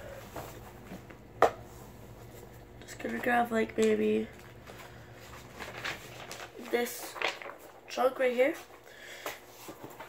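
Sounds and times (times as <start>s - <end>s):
paper sheets handled: 1.8s - 10.0s.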